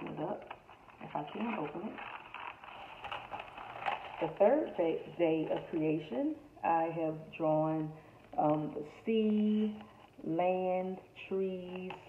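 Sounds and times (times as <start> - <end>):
paper plates rustling and scraping: 0.0 - 4.8.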